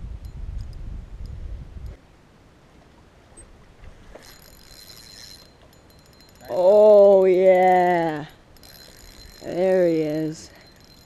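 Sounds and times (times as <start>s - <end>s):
low rumbling on microphone: 0.0s - 2.0s.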